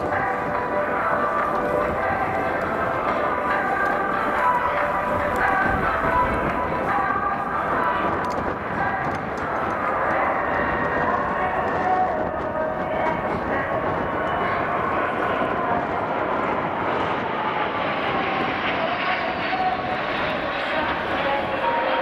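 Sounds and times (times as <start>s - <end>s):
jet engines flying past: 0.0s - 22.0s.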